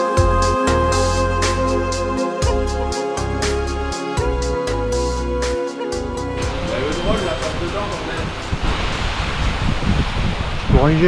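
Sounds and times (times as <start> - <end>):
low microphone rumbles: 6.4 - 11.0
stream rushing over rocks: 6.4 - 11.0
man speaking: 6.5 - 8.3.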